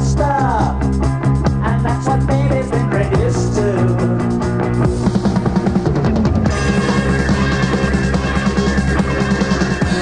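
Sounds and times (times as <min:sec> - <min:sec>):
live rock band: 0:00.0 - 0:10.0
rapid drum fill: 0:03.2 - 0:10.0.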